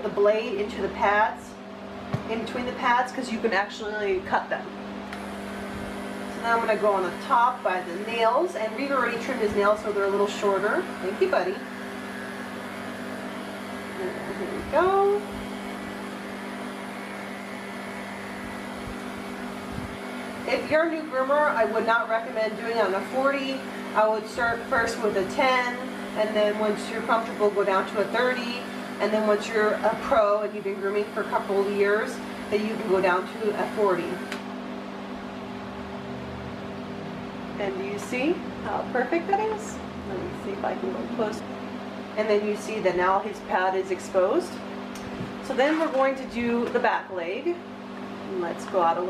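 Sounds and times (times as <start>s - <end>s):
pet clipper humming: 5.0s - 34.5s.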